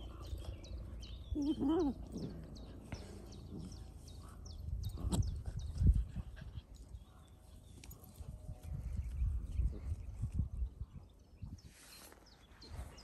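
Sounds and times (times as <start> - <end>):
birds chirping faintly: 0.0 - 13.0
dogs grunting and growling: 1.3 - 5.6.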